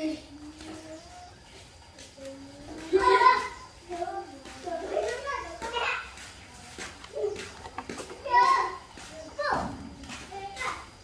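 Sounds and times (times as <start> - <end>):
child's high-pitched call: 8.2 - 9.8.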